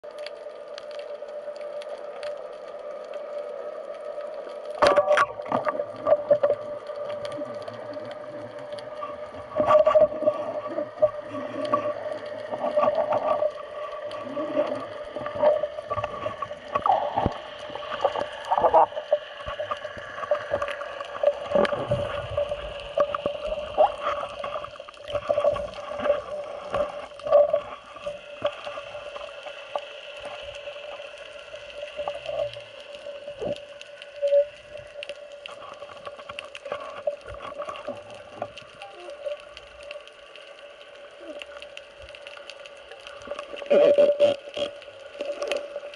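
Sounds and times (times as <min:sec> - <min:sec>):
steady underwater hum: 0:00.0 - 0:45.9.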